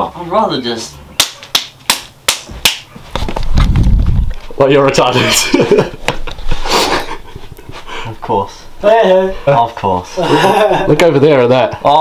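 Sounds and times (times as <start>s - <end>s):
hand claps: 1.2s - 2.9s.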